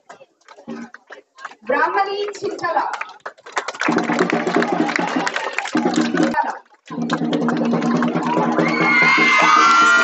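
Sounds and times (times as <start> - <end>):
crowd clapping: 0.0 - 10.0.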